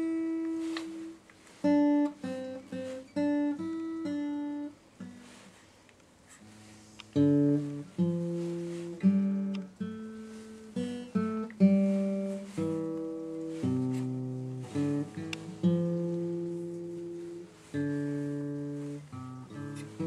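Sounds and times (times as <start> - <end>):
acoustic guitar chords: 0.0 - 5.6, 6.4 - 20.0.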